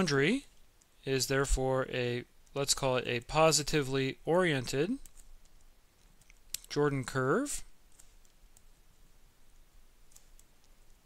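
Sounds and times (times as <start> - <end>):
stylus clicking on tablet: 4.9 - 6.8, 10.0 - 11.0.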